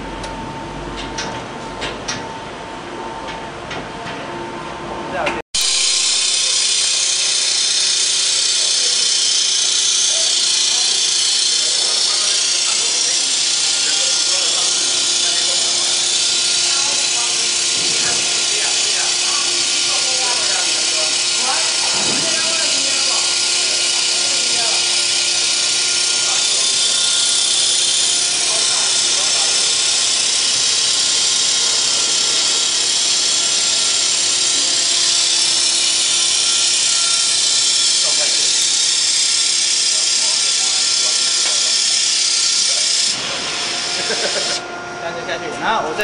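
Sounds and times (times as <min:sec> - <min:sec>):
machine hissing: 0:05.6 - 0:44.8.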